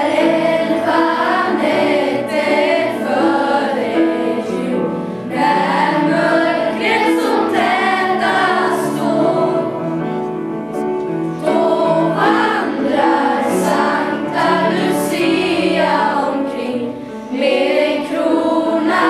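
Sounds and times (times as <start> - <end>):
children's choir singing: 0.0 - 19.0.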